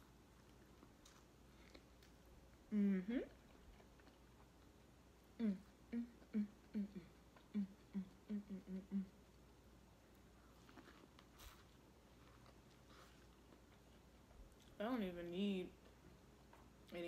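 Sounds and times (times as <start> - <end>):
faint chewing: 0.0 - 14.8, 15.7 - 17.0
woman humming: 2.7 - 3.4, 5.4 - 9.2.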